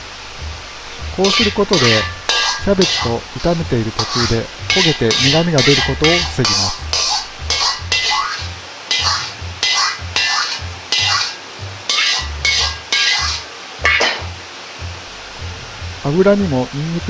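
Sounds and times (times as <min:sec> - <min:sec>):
faint oil sizzle: 0:00.0 - 0:17.0
metal ladle scraping a wok: 0:01.1 - 0:14.3.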